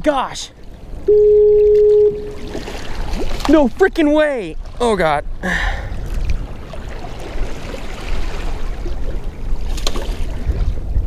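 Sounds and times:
seawater washing against rocks: 1.6s - 5.1s
wind buffeting microphone: 4.5s - 11.0s.

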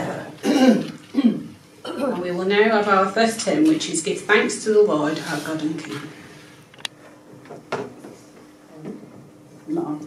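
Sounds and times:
woman clearing her throat: 0.4s - 2.2s
woman speaking: 1.2s - 6.2s, 8.8s - 10.0s.

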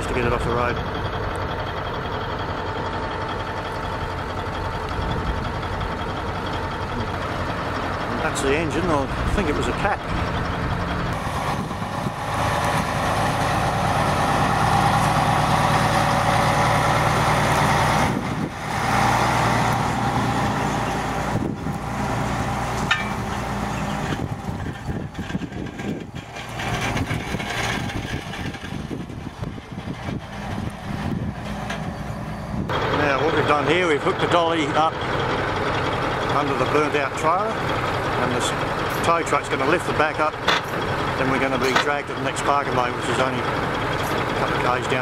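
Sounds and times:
diesel truck engines idling: 0.0s - 45.0s.

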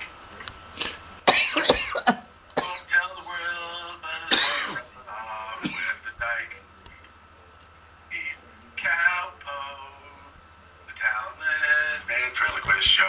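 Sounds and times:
radio voices talking: 2.9s - 13.0s.

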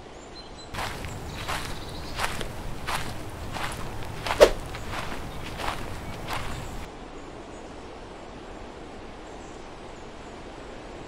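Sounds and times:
footsteps on dirt path: 0.8s - 6.9s.

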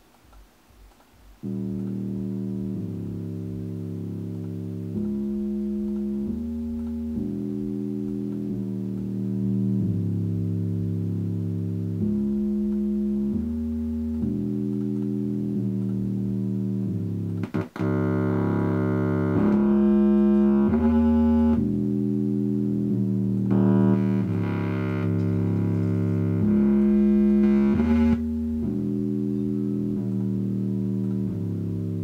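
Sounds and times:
synthesizer sustained chords: 0.7s - 32.0s.

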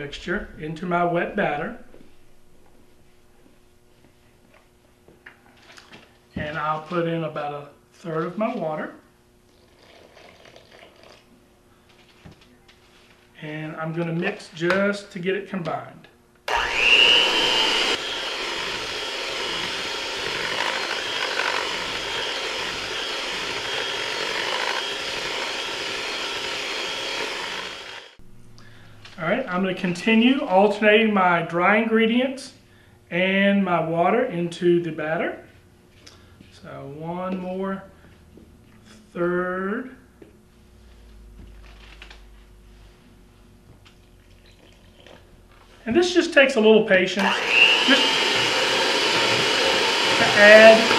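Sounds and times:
water pouring into batter: 9.5s - 11.3s
beaters churning through batter: 16.5s - 28.2s, 47.2s - 50.9s
electric hand mixer whirring: 16.5s - 28.2s, 47.2s - 50.9s.

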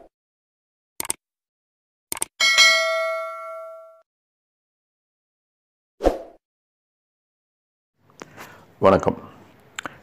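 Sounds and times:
short clicks: 1.0s - 1.2s, 2.1s - 2.3s
bright bell ding: 2.4s - 4.0s.

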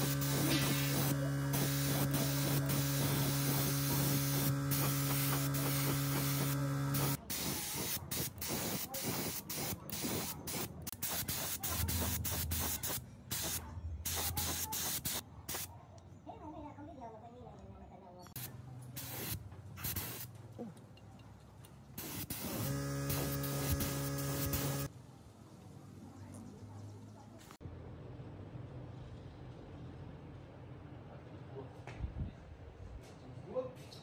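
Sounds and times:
steady machine hum: 0.0s - 7.2s, 22.2s - 24.9s
paint spray gun hissing: 0.0s - 15.7s, 18.4s - 20.3s, 22.0s - 24.9s.

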